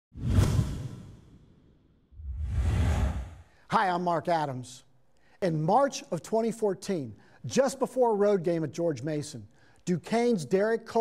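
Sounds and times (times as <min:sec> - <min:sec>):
deep whoosh: 0:02.2 - 0:03.5.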